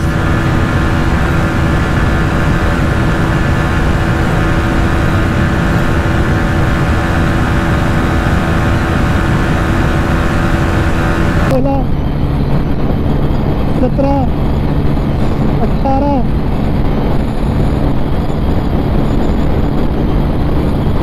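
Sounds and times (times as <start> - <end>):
motorcycle engine running flat out: 0.0 - 11.6
wind rush on microphone: 0.0 - 21.0.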